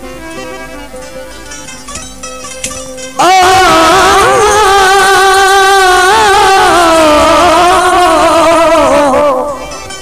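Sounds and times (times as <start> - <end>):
man singing a held note: 3.2 - 9.8.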